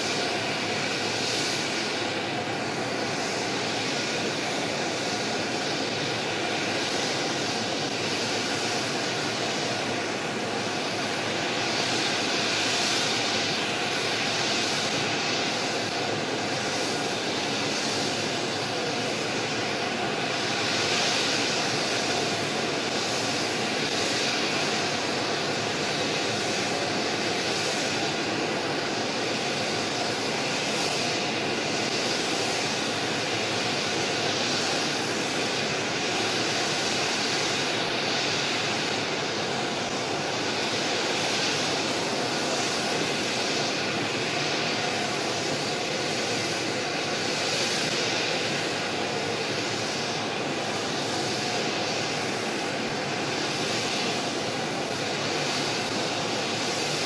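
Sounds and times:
faint engine whine: 0.0 - 57.0
jet engines roaring: 0.0 - 57.0.

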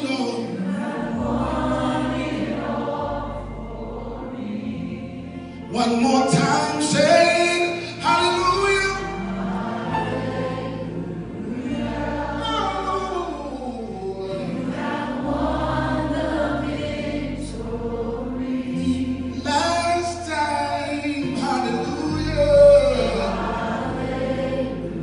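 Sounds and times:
band with bass keyboard guitars: 0.0 - 25.0
group singing sustained notes: 0.0 - 25.0.

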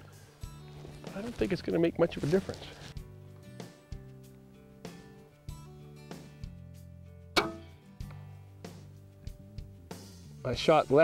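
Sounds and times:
background music with low bass: 0.0 - 11.0
crossbow firing crack: 7.4 - 7.8.

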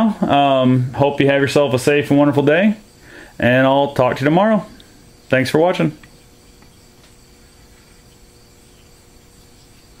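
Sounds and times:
crickets chirping: 0.0 - 10.0
low steady hum: 0.0 - 10.0.

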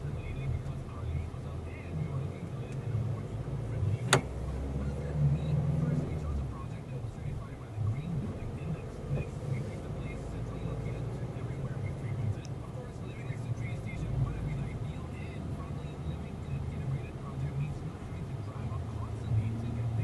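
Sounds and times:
car road and engine rumble: 0.0 - 20.0
sharp click: 4.1 - 4.3.

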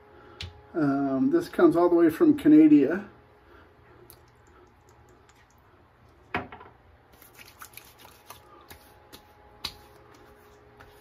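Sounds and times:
faint rustling of hands: 7.1 - 11.0.

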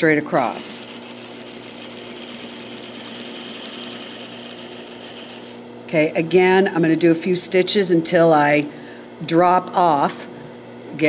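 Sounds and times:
sewing machine stitching: 0.4 - 5.6.

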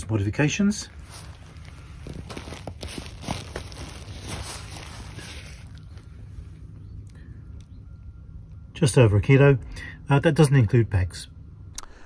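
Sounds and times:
low outdoor rumble: 0.0 - 12.0
nylon bag rustling: 0.9 - 6.3.

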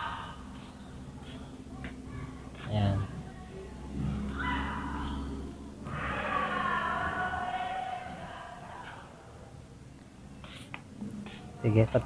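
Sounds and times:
person chanting: 5.9 - 9.2.

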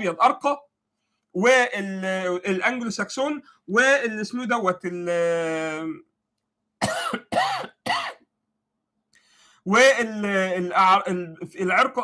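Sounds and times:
man coughing: 6.8 - 8.3.

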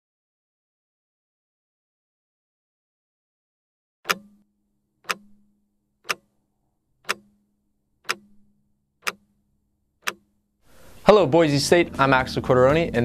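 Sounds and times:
stopwatch ticking: 4.1 - 6.4, 7.0 - 10.5.

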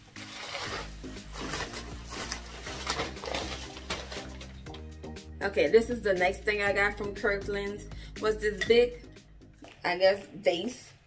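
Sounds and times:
paper and bubble wrap crinkling: 0.0 - 4.8
background music: 0.0 - 10.8.

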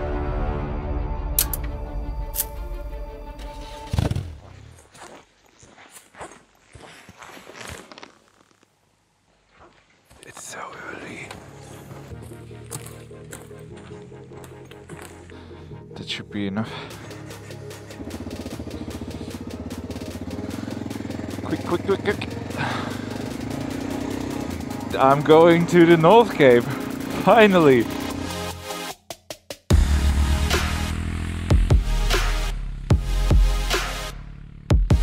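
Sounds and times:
dark dramatic music: 0.0 - 4.2, 11.0 - 29.0, 29.7 - 35.0
soft low speech: 10.2 - 11.7.

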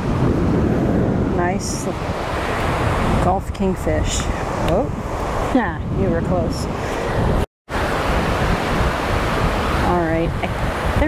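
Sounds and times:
surf waves washing onto beach: 0.0 - 11.0
wind buffeting microphone: 0.0 - 11.0.

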